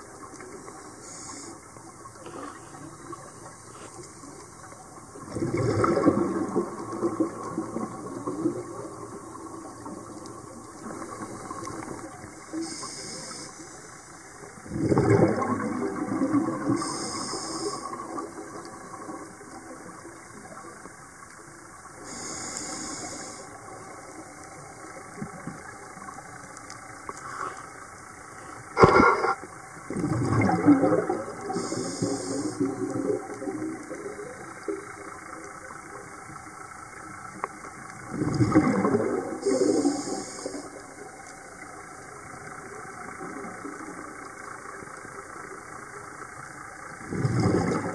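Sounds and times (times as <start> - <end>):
scuba regulator bubbles rushing: 5.0 - 13.4, 14.4 - 19.9, 28.8 - 35.3, 38.0 - 41.1, 47.0 - 47.9.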